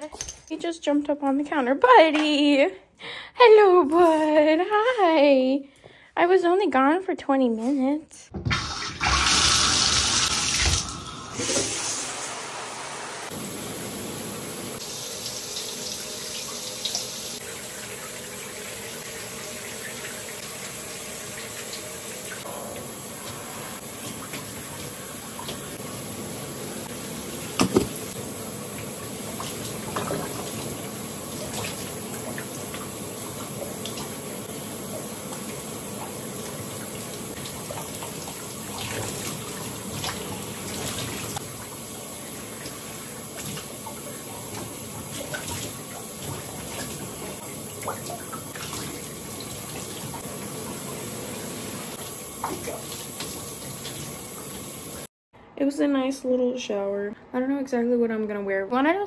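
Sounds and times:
water rushing from faucet: 8.4 - 55.1
shower spray running: 8.5 - 55.1.

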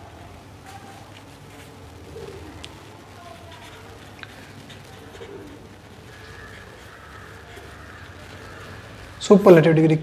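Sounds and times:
bird cooing: 1.9 - 9.2.

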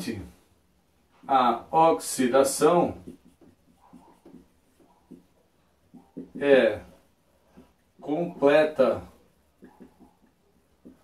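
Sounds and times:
marker writing on whiteboard: 1.2 - 11.0.

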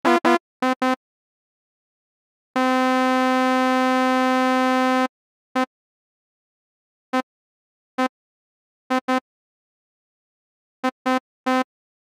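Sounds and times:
square-wave synthesizer notes: 0.0 - 0.4.

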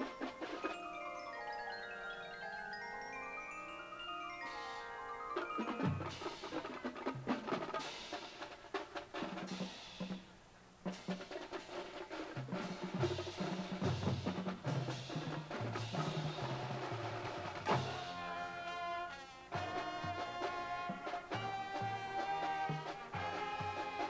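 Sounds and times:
snare and tenor drum rolls: 5.4 - 24.0.

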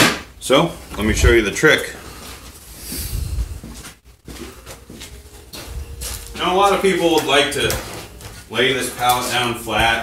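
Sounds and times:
rumbling handling noise: 2.2 - 10.0.

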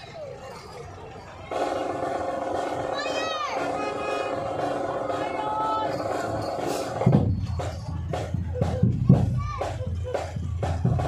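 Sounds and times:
chatter of children and onlookers: 0.0 - 11.0
marching band drums beating: 1.5 - 11.0.

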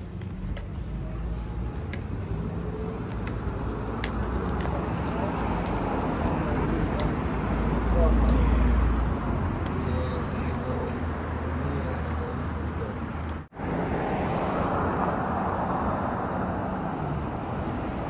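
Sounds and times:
indistinct voices: 0.0 - 13.3
city street traffic: 0.0 - 18.0
vehicle passing: 0.0 - 18.0.

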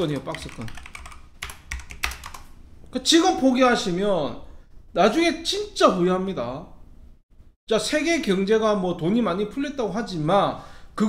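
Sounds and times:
computer keyboard typing: 0.0 - 2.5.

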